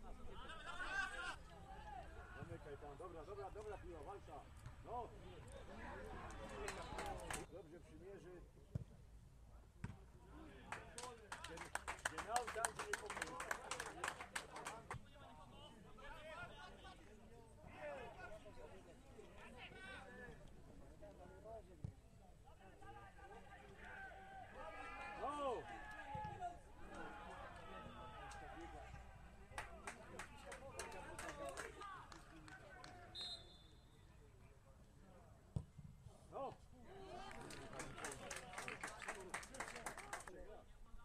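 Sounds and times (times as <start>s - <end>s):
footballers shouting and calling: 0.0s - 9.0s, 9.6s - 41.0s.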